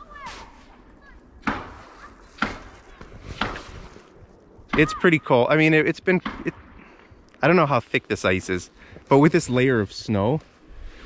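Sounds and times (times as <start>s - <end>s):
footsteps in snow: 1.8s - 4.3s, 8.2s - 11.0s.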